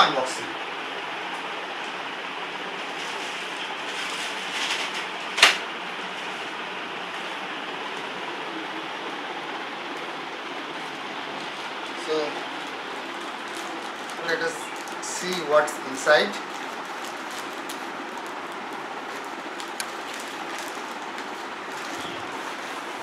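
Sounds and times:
room hiss: 0.0 - 23.0
plastic bag rustling: 2.6 - 6.6, 10.7 - 23.0.

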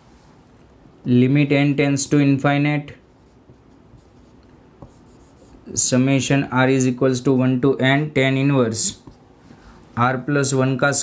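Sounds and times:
marker scratching on whiteboard: 3.0 - 5.8, 8.8 - 9.7.

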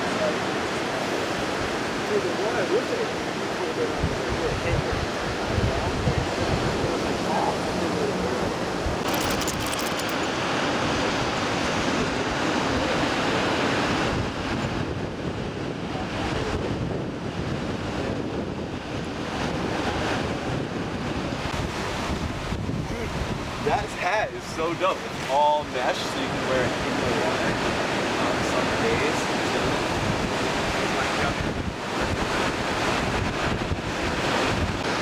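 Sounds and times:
ocean surf breaking: 0.0 - 35.0
wind buffeting microphone: 0.0 - 35.0.

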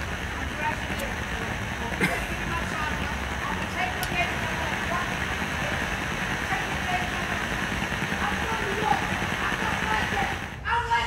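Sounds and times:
faint voices: 0.0 - 11.0
steady background noise: 0.0 - 11.0.

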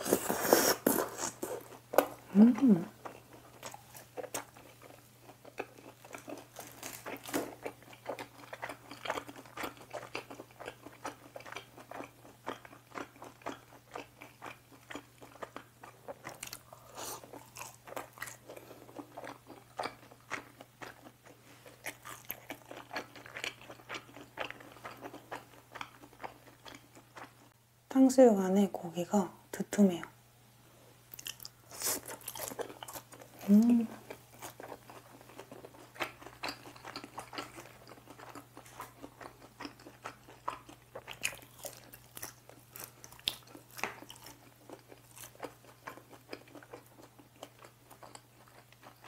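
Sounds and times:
crunchy chewing: 0.0 - 27.4, 31.1 - 49.0.

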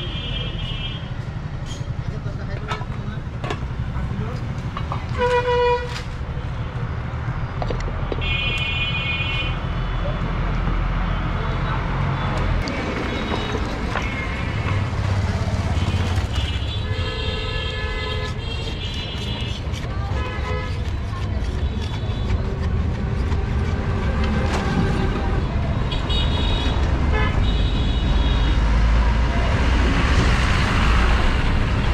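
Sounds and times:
low traffic rumble: 0.0 - 31.9
vehicle horns honking: 5.1 - 6.1, 15.7 - 20.8, 24.5 - 28.5.

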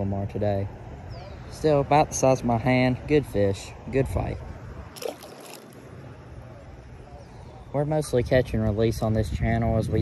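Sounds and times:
wind on microphone: 8.2 - 10.0.

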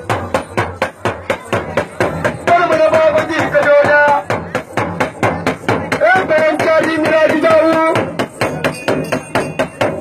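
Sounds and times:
hand percussion fast beat: 0.0 - 10.0.

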